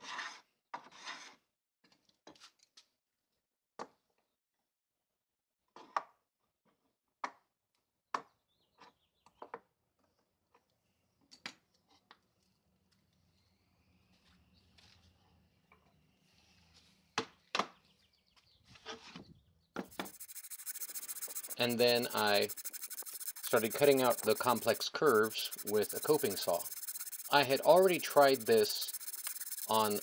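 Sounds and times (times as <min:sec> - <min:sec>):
steady hiss: 0:19.9 - 0:30.0.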